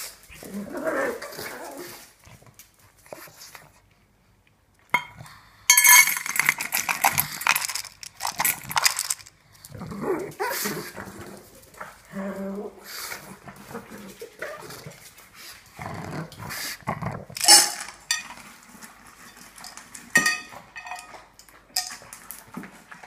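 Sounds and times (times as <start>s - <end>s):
steel bowl clattering on tile: 5.0s - 9.4s, 17.3s - 22.8s.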